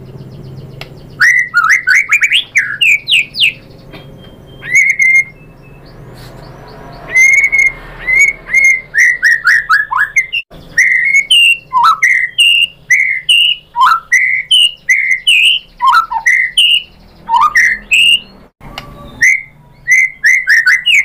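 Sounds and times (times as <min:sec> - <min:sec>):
bird singing whistled notes: 0:00.0 - 0:21.0.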